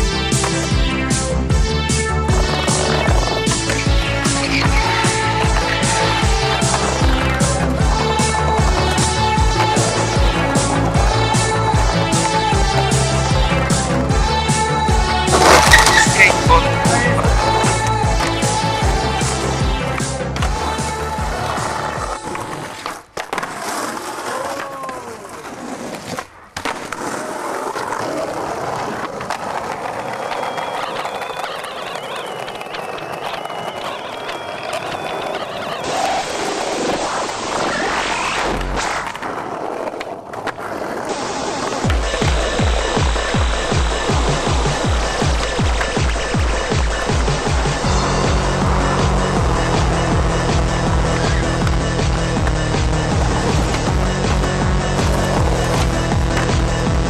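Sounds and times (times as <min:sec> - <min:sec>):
music with steady beat: 0:00.0 - 0:20.2, 0:41.9 - 0:57.0
skateboard wheels rolling on concrete: 0:00.0 - 0:57.0
skateboard grinding metal rail: 0:15.3 - 0:16.4.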